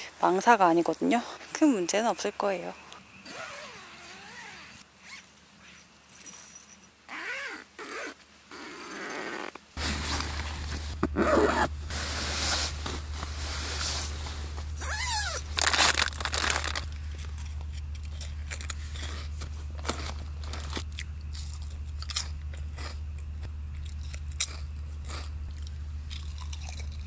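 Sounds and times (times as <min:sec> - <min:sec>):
tent fabric rustling: 0:03.4 - 0:06.6, 0:09.8 - 0:17.0
low steady hum: 0:09.8 - 0:27.0.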